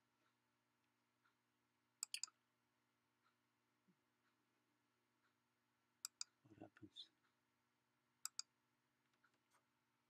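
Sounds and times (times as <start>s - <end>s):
computer mouse button clicks: 2.0s - 2.3s, 8.2s - 8.5s.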